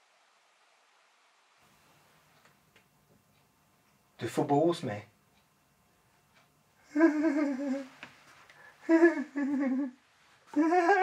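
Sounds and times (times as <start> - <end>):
person humming with vibrato: 6.8 - 8.0, 8.8 - 11.0.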